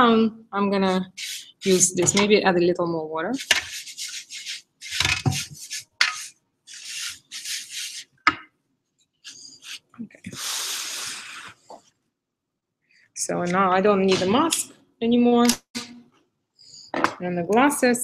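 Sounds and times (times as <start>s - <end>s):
brush scrubbing paint in tray: 0.8s - 2.2s, 3.3s - 8.2s.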